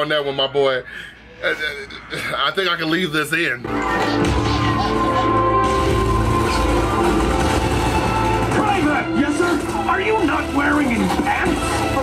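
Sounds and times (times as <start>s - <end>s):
music: 3.6s - 12.0s
rifle gunfire: 5.6s - 11.6s.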